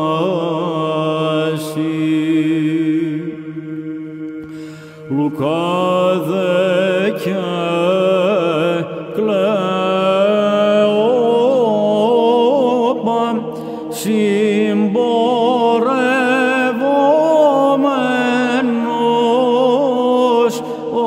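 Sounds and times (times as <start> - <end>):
low held vocal drone: 0.0 - 21.0
man chanting ornamented melody: 5.1 - 21.0.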